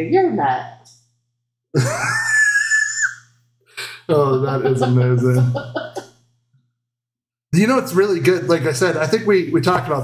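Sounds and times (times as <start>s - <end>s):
person squealing: 1.8s - 3.2s.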